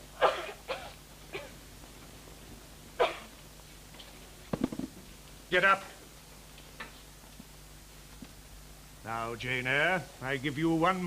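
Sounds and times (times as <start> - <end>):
girl coughing: 0.2 - 1.6, 3.0 - 3.3.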